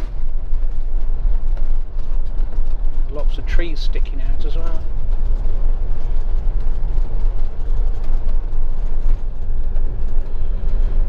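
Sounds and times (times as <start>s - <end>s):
engine and tyres rumbling: 0.0s - 11.0s.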